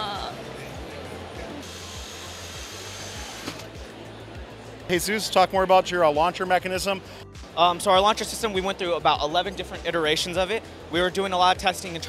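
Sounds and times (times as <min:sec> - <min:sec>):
background music with low beat: 0:00.0 - 0:12.0
high whirring hiss: 0:01.6 - 0:03.7.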